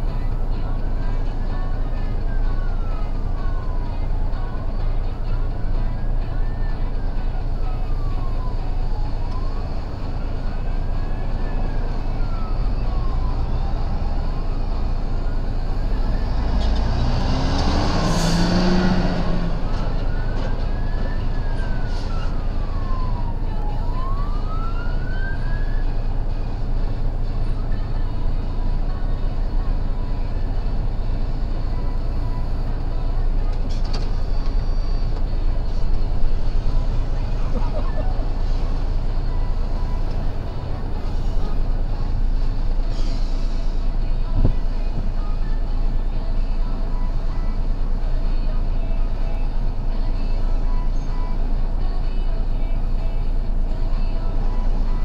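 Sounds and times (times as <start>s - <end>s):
emergency vehicle siren wailing: 0.0s - 44.3s
road traffic rumble: 0.0s - 55.0s
heavy vehicle passing: 15.9s - 21.1s.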